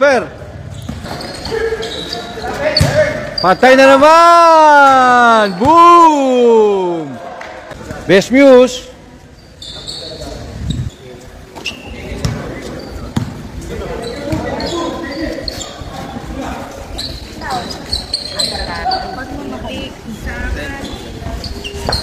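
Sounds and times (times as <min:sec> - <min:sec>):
spectators chattering: 0:00.0 - 0:04.2, 0:05.0 - 0:22.0
basketball bouncing on court: 0:12.1 - 0:13.4.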